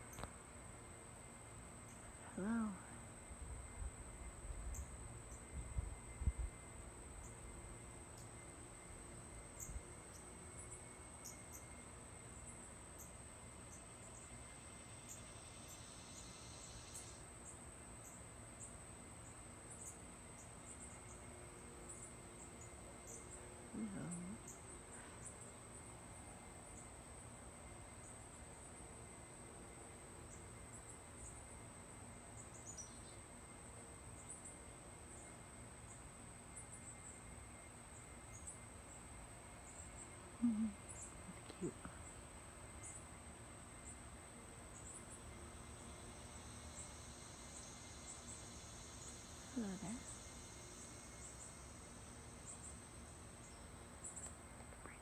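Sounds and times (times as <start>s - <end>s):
low hiss: 0.0s - 55.0s.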